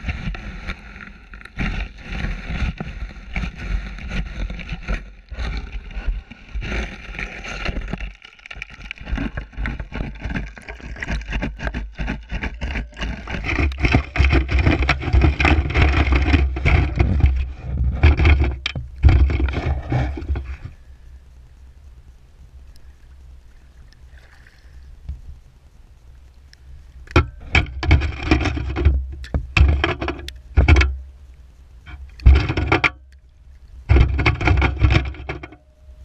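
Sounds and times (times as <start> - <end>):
water sloshing and splashing: 0.0 - 20.6
wind rumbling on microphone: 0.0 - 24.2
scattered clicks and knocks: 1.3 - 20.7, 27.1 - 31.0, 31.9 - 33.2, 33.9 - 35.7.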